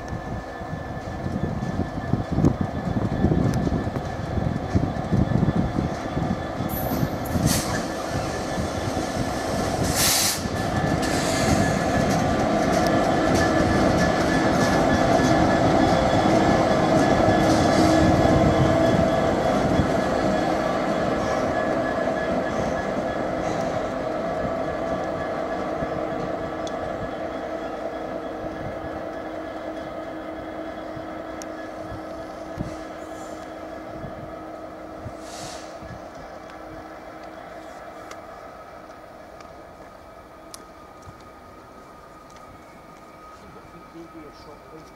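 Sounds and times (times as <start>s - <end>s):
diesel locomotive engine drone: 0.0s - 44.9s
train wheels rumbling over track: 0.0s - 44.9s.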